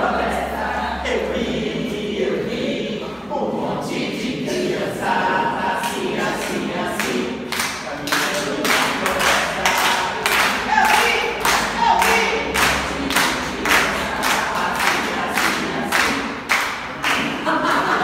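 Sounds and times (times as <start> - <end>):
group of adults singing: 0.0 - 18.0
people clapping a steady beat: 5.6 - 18.0.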